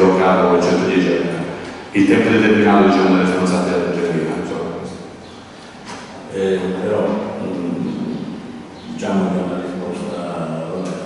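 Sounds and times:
man talking hesitantly: 0:06.2 - 0:11.0.

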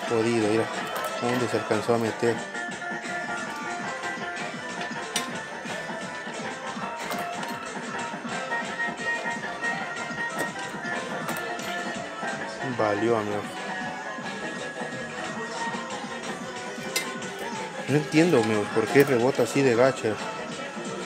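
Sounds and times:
busy arcade din: 0:00.0 - 0:21.0
music with held tones: 0:00.0 - 0:21.0.

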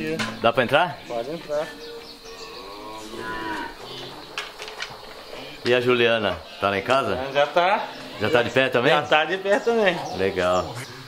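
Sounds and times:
cow mooing: 0:02.2 - 0:04.3.

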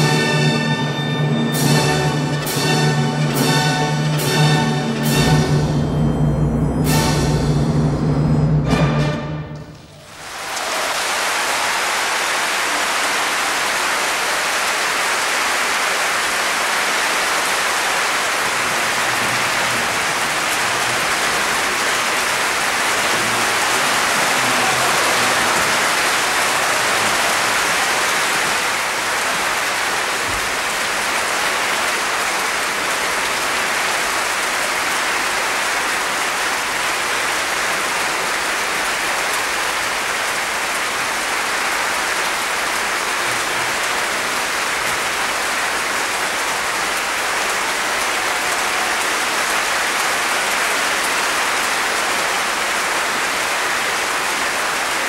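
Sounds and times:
audience applauding: 0:09.8 - 0:55.0.

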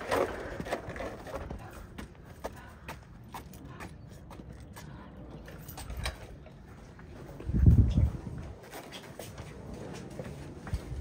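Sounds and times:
footsteps on concrete: 0:00.0 - 0:11.0.

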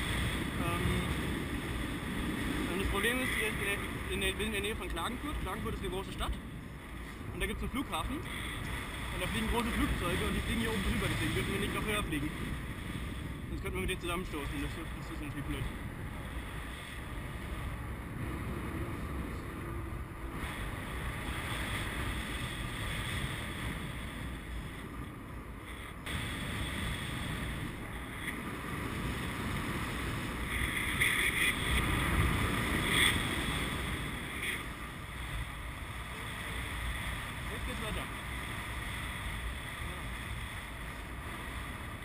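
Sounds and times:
wind rushing over microphone: 0:00.0 - 0:42.0.

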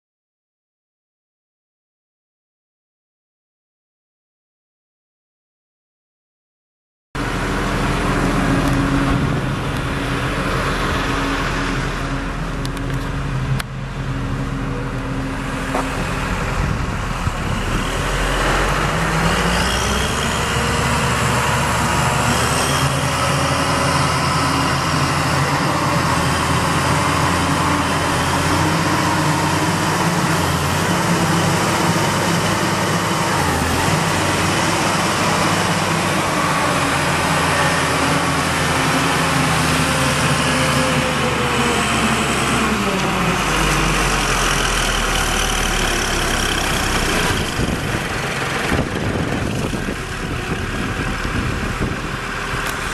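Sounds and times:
diesel engine running: 0:07.2 - 0:52.9.

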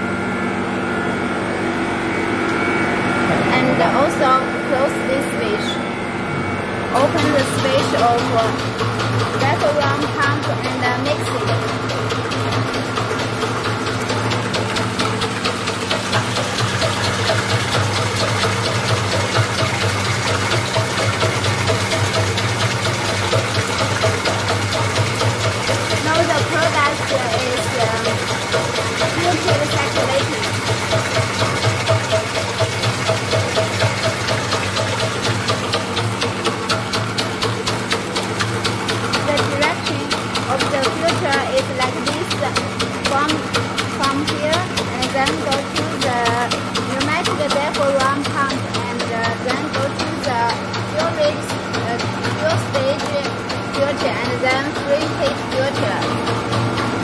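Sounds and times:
pump humming with fast pulsing: 0:00.0 - 0:57.0.

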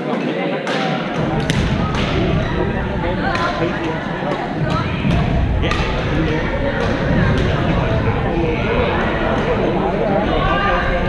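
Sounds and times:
chatter of many players: 0:00.0 - 0:11.0.

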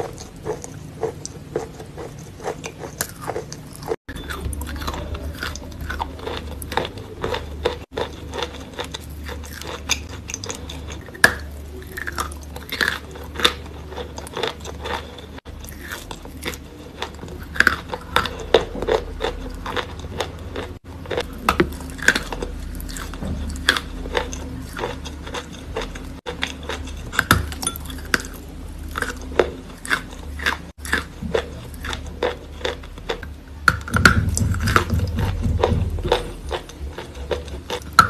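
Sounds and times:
crunching and chewing chalk: 0:00.0 - 0:38.0.

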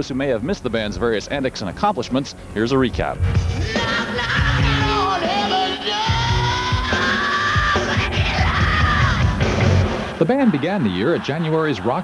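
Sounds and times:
drum hits: 0:03.2 - 0:05.4
hard rock band playing live: 0:03.2 - 0:10.2.

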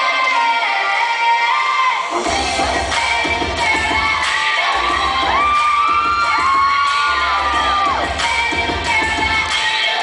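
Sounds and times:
music with steady beat: 0:02.1 - 0:10.0
children cheering and screaming: 0:04.7 - 0:08.3.

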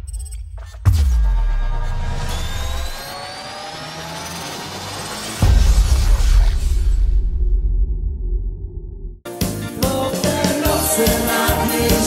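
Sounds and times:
synthesized riser sweep: 0:00.0 - 0:09.2
deep bass hit: 0:05.4 - 0:09.2.

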